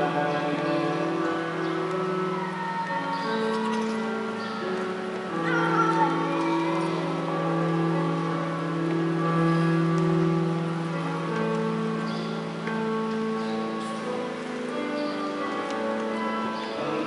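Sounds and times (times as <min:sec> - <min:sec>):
slow church hymn music: 0:00.0 - 0:17.0.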